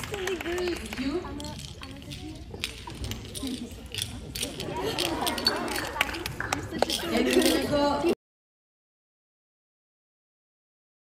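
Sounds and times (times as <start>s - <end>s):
people chattering: 0.0s - 8.2s.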